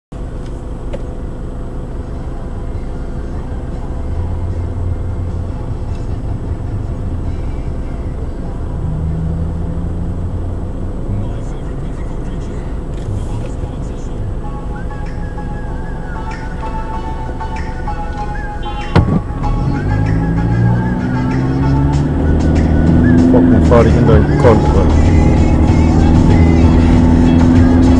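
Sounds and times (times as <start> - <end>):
engine idling: 0.2 - 9.2, 10.2 - 19.4
passing traffic: 0.2 - 27.9.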